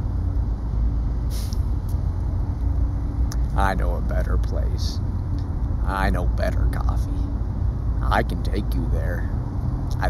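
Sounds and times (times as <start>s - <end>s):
low outdoor rumble: 0.0s - 10.0s
short hiss: 1.3s - 1.7s.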